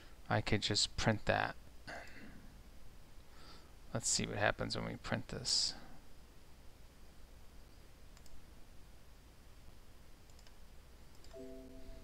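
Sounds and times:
low room hum: 0.0 - 12.0
computer mouse clicks: 8.1 - 8.4, 10.2 - 11.4.

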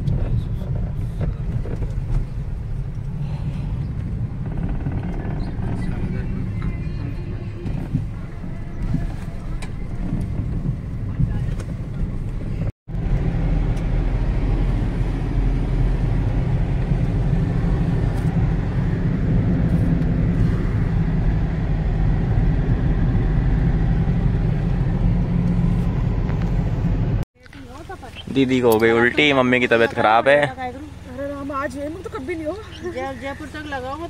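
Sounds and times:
car engine and tyres rumbling: 0.0 - 34.0.

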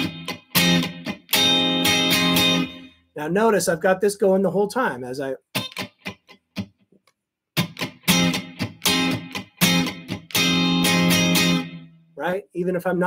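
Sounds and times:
electric guitar funk strumming: 0.0 - 3.0, 5.5 - 6.8, 7.6 - 12.0.

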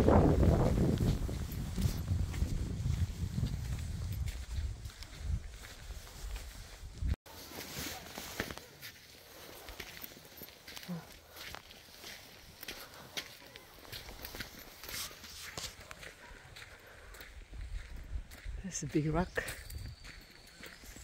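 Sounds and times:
footsteps on dirt and leaves: 0.0 - 21.0.

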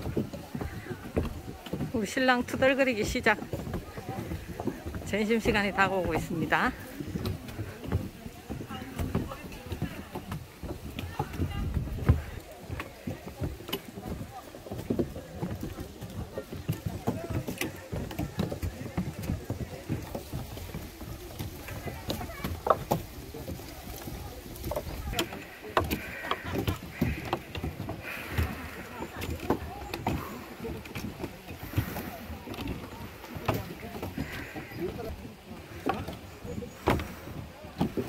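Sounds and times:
footsteps on wooden stairs: 0.0 - 38.0
people's voices: 0.0 - 38.0.

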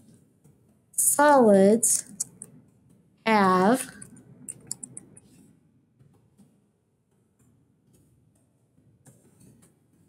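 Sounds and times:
computer keyboard clicks: 4.5 - 5.2.

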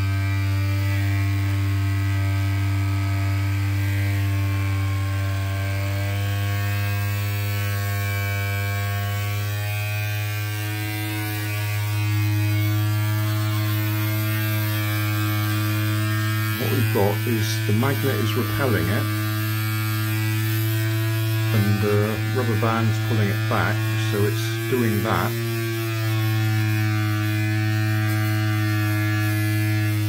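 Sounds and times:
small electric motor buzzing: 0.0 - 30.0.

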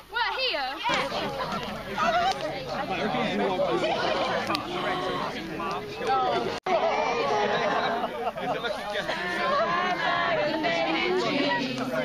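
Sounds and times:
young voices talking and laughing: 0.0 - 12.0.

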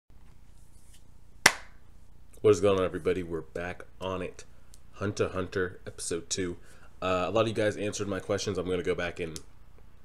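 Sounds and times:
faint steady hiss: 0.2 - 10.0
sharp hand clap: 1.5 - 1.8.

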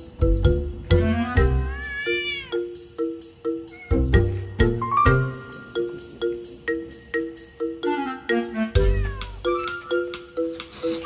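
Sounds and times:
light background music: 0.0 - 11.0
cat meowing: 1.6 - 2.7, 3.7 - 4.0, 8.8 - 9.7.

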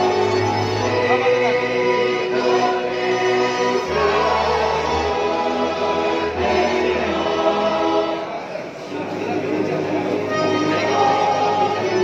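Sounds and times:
choir singing sustained chords: 0.0 - 12.0.

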